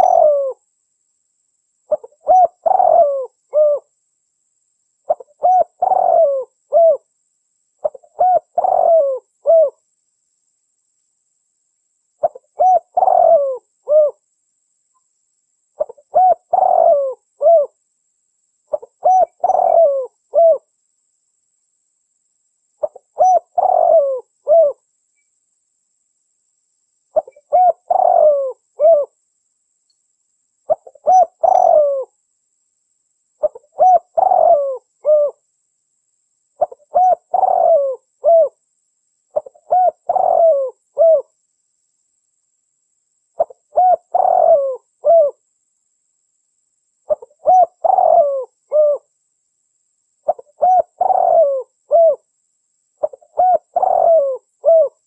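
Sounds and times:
dove cooing: 0.0s - 0.6s, 1.9s - 3.9s, 5.1s - 7.1s, 7.8s - 9.8s, 12.2s - 14.2s, 15.8s - 17.8s, 18.7s - 20.7s, 22.8s - 24.8s, 27.1s - 29.2s, 30.7s - 32.1s, 33.4s - 35.4s, 36.6s - 38.6s, 39.3s - 41.4s, 43.4s - 45.4s, 47.1s - 49.1s, 50.2s - 52.3s, 53.0s - 55.0s.

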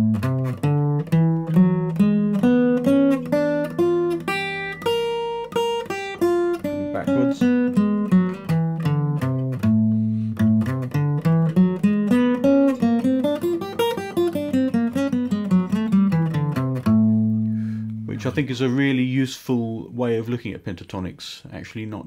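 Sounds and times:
acoustic guitar picked notes: 0.0s - 19.1s.

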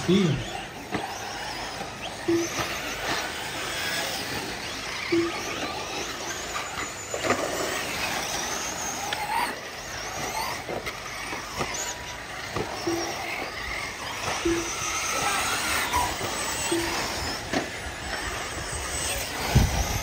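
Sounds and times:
rc car engines whining: 0.0s - 20.0s
short low beeps: 2.2s - 3.0s, 5.1s - 5.7s, 12.8s - 13.4s, 14.4s - 15.4s, 16.6s - 17.4s.

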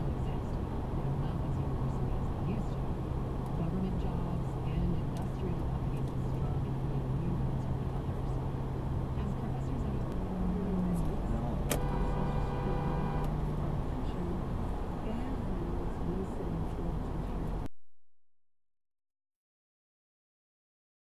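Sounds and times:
car road and engine noise: 0.0s - 17.7s
constant low hum: 0.0s - 17.7s.

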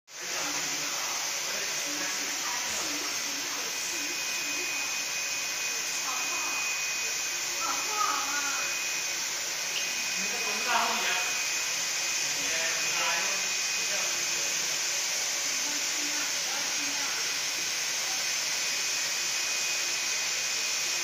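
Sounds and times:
thin high whine: 0.4s - 14.8s.

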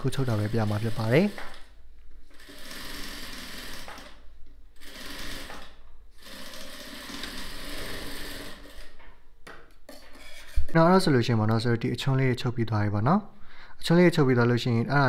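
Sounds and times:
sewing machine stitching: 0.0s - 1.7s, 2.3s - 4.2s, 4.8s - 9.0s.

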